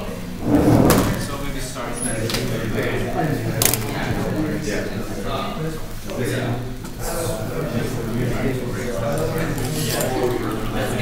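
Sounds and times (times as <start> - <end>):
students chattering: 0.0 - 11.0
loud thump: 0.4 - 1.4
sharp click: 3.6 - 4.0.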